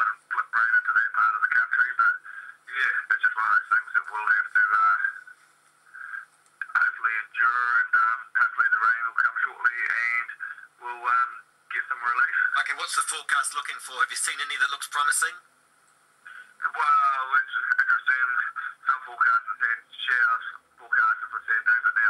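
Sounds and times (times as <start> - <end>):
man talking through speaker: 0.0 - 5.4, 6.0 - 15.4, 16.3 - 22.0.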